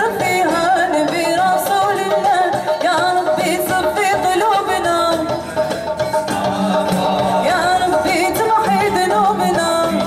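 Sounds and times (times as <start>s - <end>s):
woman singing: 0.0s - 5.5s, 6.4s - 10.0s
instrumental accompaniment: 0.0s - 10.0s.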